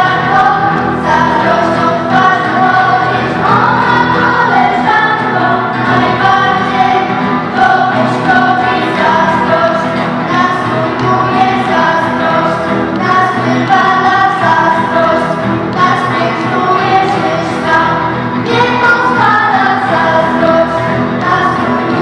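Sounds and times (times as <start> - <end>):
girls' choir singing: 0.0 - 22.0.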